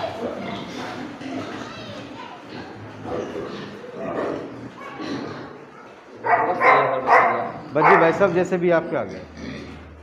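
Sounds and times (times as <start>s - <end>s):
young pigs grunting and squealing: 0.0s - 10.0s.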